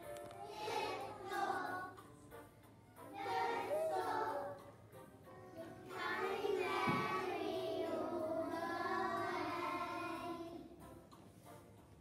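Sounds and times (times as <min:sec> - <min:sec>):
young children singing: 0:00.2 - 0:02.2, 0:03.0 - 0:04.8, 0:05.5 - 0:10.8.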